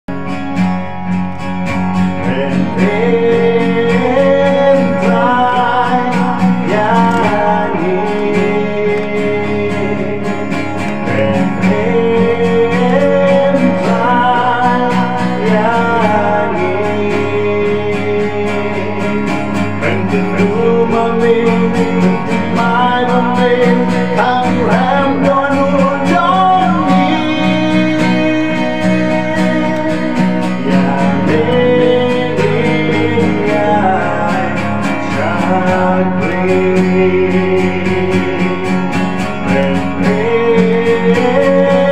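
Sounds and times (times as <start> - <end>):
strummed acoustic guitar: 0.1 - 41.9
man singing: 1.8 - 41.9.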